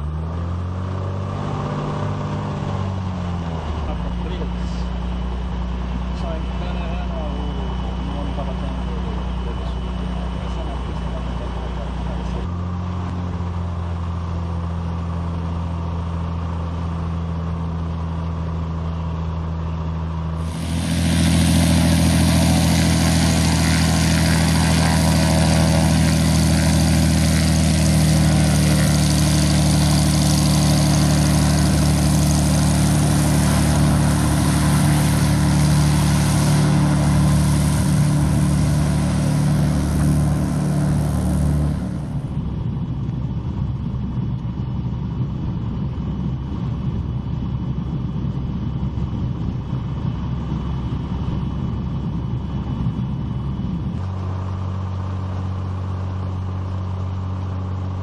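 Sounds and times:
muffled engine hum in cockpit: 0.0 - 58.0
plane engine and propeller: 0.0 - 58.0.

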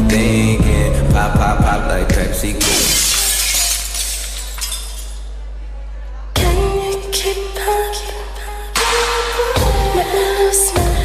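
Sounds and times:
glass shattering effect: 2.6 - 5.3
dance music: 8.8 - 11.0.

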